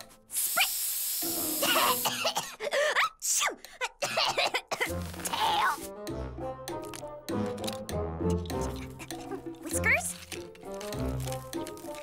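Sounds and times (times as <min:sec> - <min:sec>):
spray can hissing: 0:00.3 - 0:02.2
girl coughing and sputtering: 0:01.6 - 0:05.8, 0:08.6 - 0:10.0.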